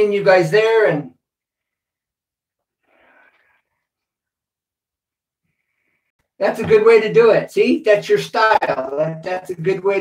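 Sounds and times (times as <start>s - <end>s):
man speaking: 0.0s - 1.2s, 6.4s - 10.0s.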